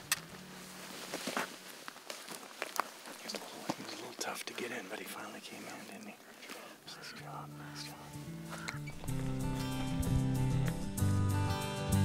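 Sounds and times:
low background music tone: 0:00.0 - 0:01.9, 0:06.9 - 0:12.0
clothing and gear rustling: 0:00.2 - 0:04.2, 0:08.1 - 0:10.8.

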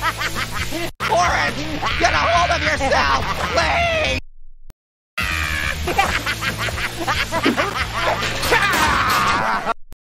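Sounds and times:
high-pitched cartoon laugh: 0:00.0 - 0:04.0, 0:05.2 - 0:09.8.

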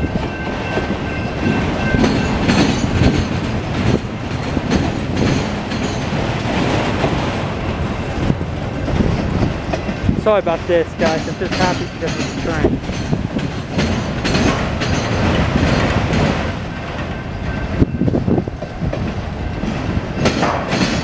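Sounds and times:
freight train rumbling past: 0:00.0 - 0:21.0
wheels clattering on rails: 0:00.0 - 0:21.0.

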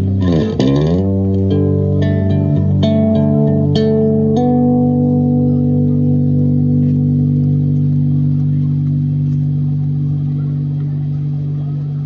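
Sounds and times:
electric bass sustained chord: 0:00.0 - 0:12.0.

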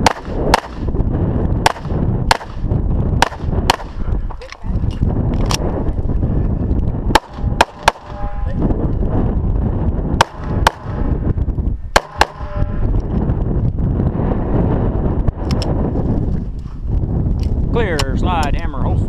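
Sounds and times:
pistol shots: 0:00.0 - 0:00.9, 0:01.6 - 0:02.6, 0:03.2 - 0:04.0, 0:07.1 - 0:08.2, 0:10.2 - 0:11.0, 0:12.0 - 0:12.5
low rumble: 0:00.0 - 0:19.0.

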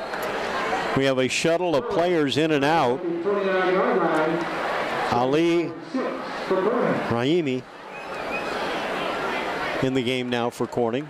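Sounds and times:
man announcing: 0:01.0 - 0:04.5, 0:05.1 - 0:07.7, 0:09.8 - 0:11.0.

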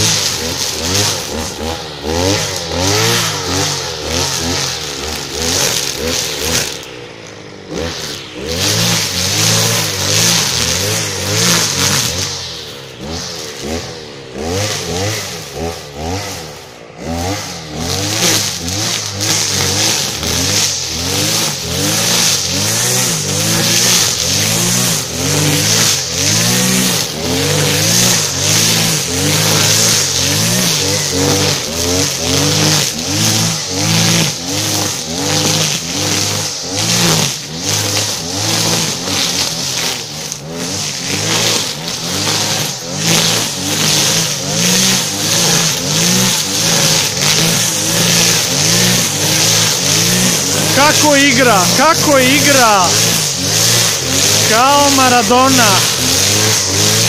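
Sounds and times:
brush cutter cutting grass: 0:00.0 - 0:57.0.

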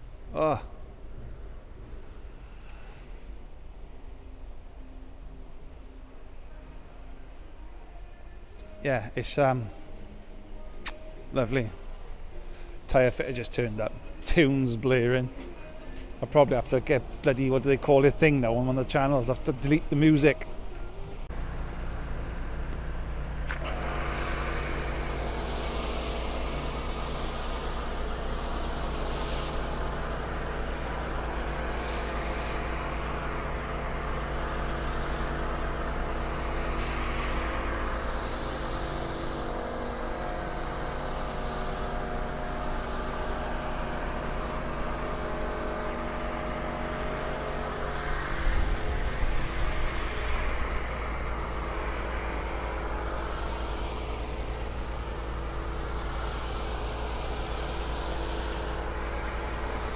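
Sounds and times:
engine idling: 0:21.4 - 0:59.9.

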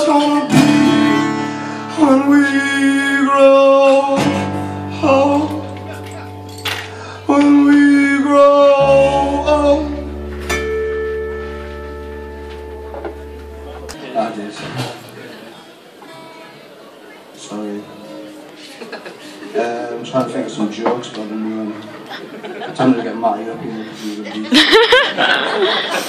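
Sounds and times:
man singing: 0:00.0 - 0:10.2
acoustic guitar strumming: 0:00.0 - 0:14.0.

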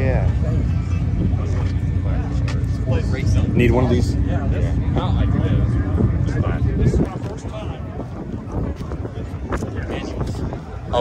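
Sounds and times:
faint crowd voices: 0:00.0 - 0:11.0
wind buffeting microphone: 0:00.0 - 0:11.0.

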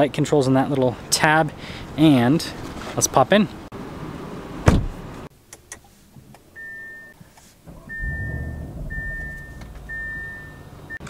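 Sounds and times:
car warning chime beeping: 0:06.6 - 0:11.0
low rumble: 0:07.7 - 0:11.0.

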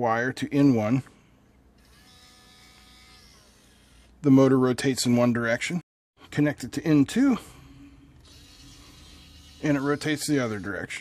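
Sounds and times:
small motor whining: 0:01.8 - 0:04.2, 0:08.2 - 0:10.9.

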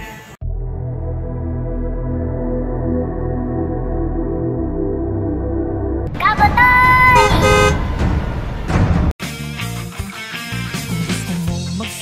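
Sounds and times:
rough rumbling noise: 0:03.4 - 0:09.2
comic horn toot: 0:06.5 - 0:08.4
two-note honk: 0:07.1 - 0:08.0.

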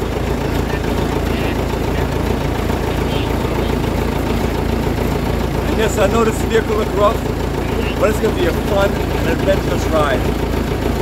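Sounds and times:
truck engine idling: 0:00.0 - 0:11.0.

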